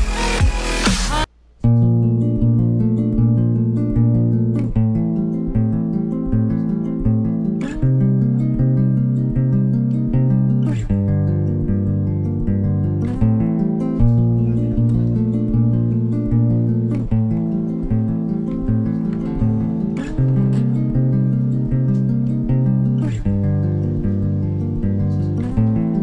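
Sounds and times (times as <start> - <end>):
acoustic guitar chords: 0.0 - 26.0.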